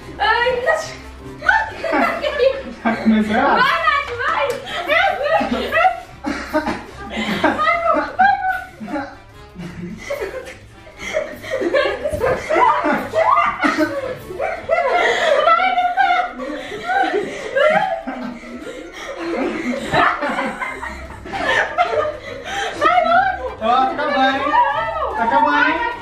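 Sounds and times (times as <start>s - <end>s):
people laughing: 0.7s - 26.0s.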